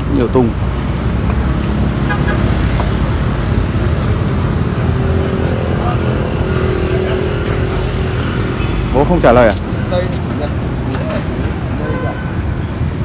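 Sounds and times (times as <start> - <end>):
low rumble of road traffic: 0.0 - 13.0
steady engine hum: 0.0 - 13.0.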